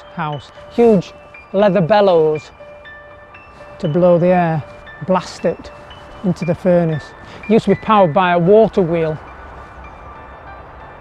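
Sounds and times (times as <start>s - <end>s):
man's voice: 0.0s - 2.6s, 3.8s - 9.2s.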